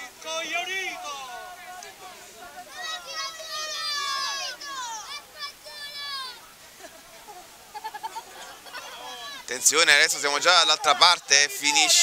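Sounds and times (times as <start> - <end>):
high-pitched shouting voices: 0.6 - 6.4.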